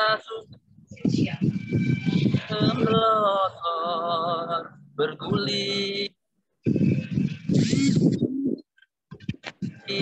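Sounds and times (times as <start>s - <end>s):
man singing a poem: 2.5s - 6.2s.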